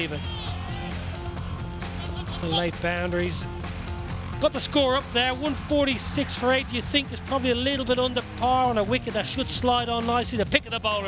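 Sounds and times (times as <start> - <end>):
commentator speaking: 0.0 - 0.4, 2.4 - 3.5, 4.4 - 11.0
background music with low notes: 0.0 - 11.0.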